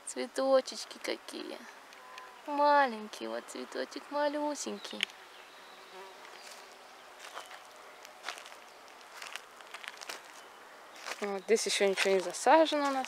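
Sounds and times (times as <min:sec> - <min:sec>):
flying insect buzzing: 0:04.8 - 0:07.8.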